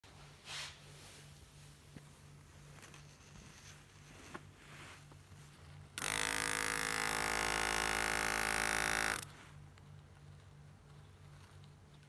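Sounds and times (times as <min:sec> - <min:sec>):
mini drill motor whine: 0:06.0 - 0:09.3.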